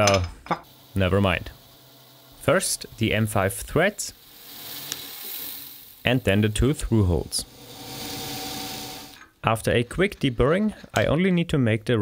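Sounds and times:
drill press cutting steel: 0:00.7 - 0:09.3.

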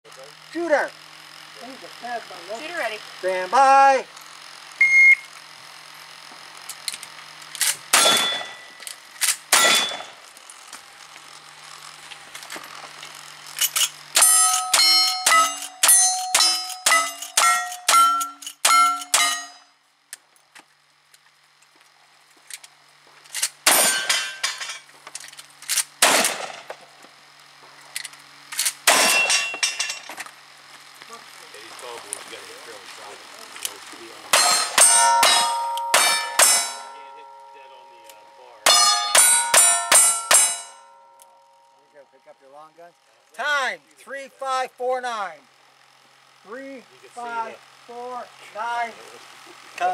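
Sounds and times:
shot timer beep: 0:04.8 - 0:05.3
rifle shots: 0:07.9 - 0:08.6, 0:09.5 - 0:10.2, 0:26.0 - 0:26.7
steel plate ringing: 0:07.9 - 0:08.8, 0:09.5 - 0:10.2, 0:14.2 - 0:19.7, 0:23.7 - 0:24.8, 0:28.9 - 0:30.1, 0:34.3 - 0:42.0.

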